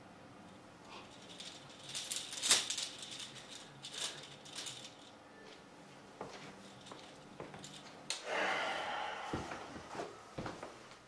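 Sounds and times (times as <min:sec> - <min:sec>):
metal chains rattling: 0:00.9 - 0:05.2, 0:06.6 - 0:08.0.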